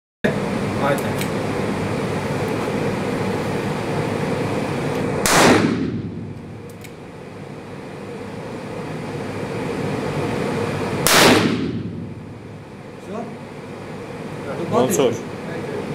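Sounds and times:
fan hum: 0.2s - 15.9s
revolver shots: 5.2s - 6.3s.

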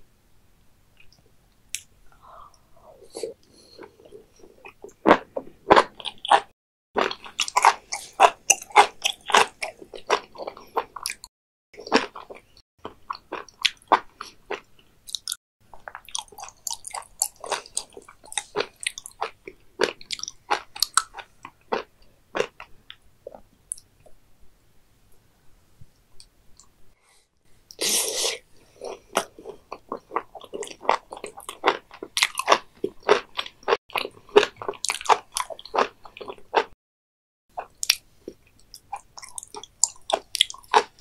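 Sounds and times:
crunchy chewing: 3.2s - 12.4s, 28.7s - 36.8s, 37.6s - 41.0s.

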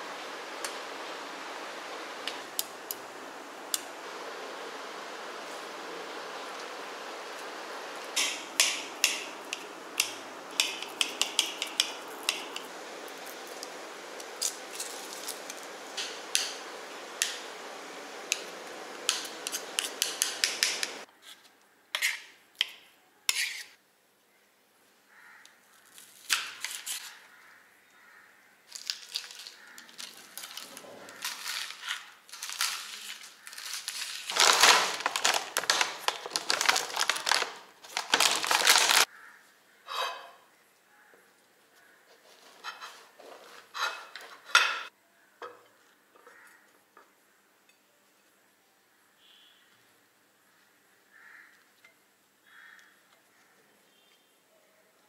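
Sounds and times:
background hiss: 0.0s - 27.9s.

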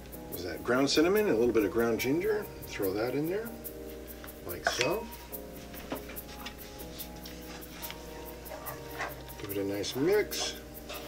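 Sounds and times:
music with held chords: 0.0s - 11.0s
steady ticking beat: 0.0s - 11.0s.

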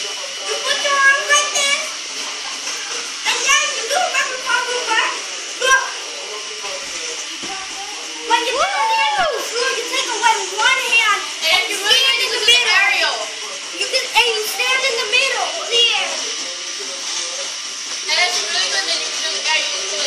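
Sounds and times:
children chattering and shouting: 0.0s - 16.8s.

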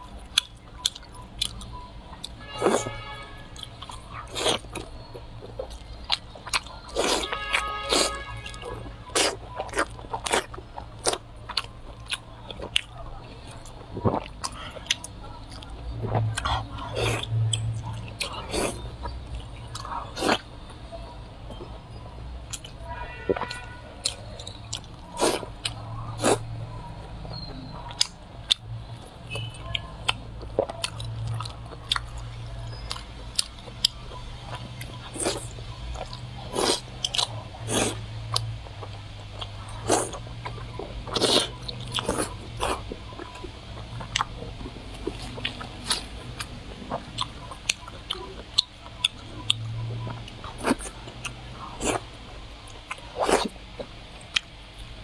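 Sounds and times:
mouth chewing sounds: 0.0s - 55.0s.

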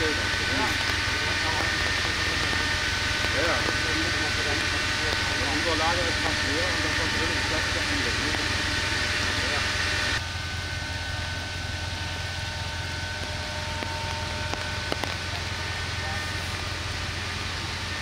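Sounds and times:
faint voices: 0.0s - 9.8s
engine humming: 0.0s - 18.0s.

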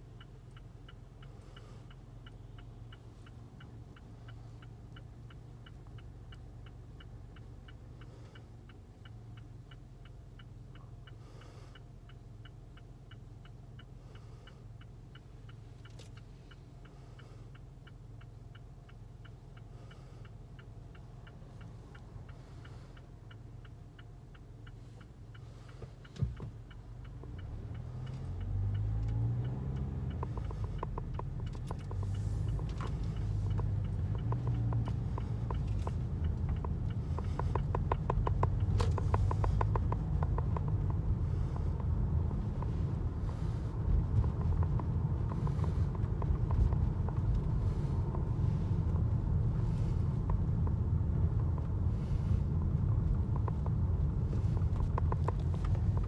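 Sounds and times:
car engine and tyre rumble: 0.0s - 56.0s
turn signal ticking: 0.0s - 56.0s.

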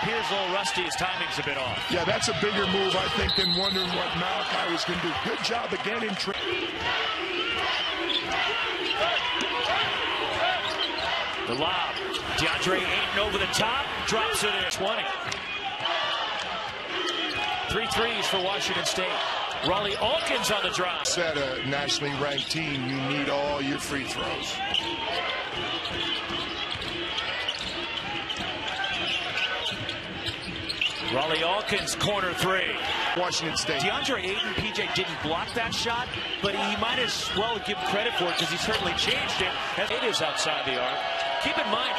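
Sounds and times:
arena crowd noise: 0.0s - 41.9s
scattered voices: 0.0s - 41.9s
sneakers squeaking: 1.2s - 20.5s, 21.8s - 41.6s.

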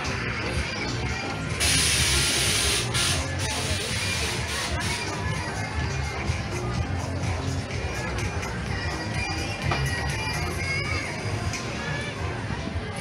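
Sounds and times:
crowd chatter: 0.0s - 13.0s
fairground music with bass beat: 0.0s - 13.0s
loud burst of hissing: 1.6s - 4.8s.

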